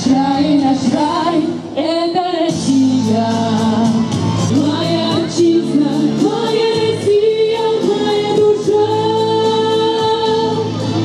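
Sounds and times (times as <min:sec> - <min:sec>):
person singing: 0:00.0 - 0:11.0.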